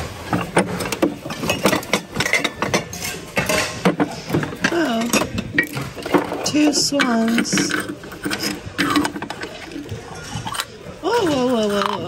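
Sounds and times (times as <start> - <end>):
ceramic and glass clinking: 0.3 - 12.0.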